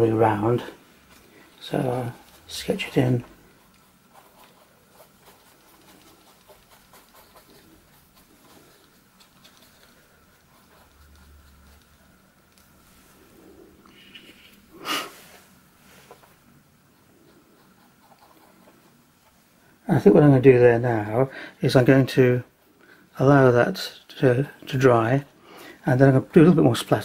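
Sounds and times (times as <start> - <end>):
brush strokes on paper: 0.2 - 14.3, 15.1 - 19.6.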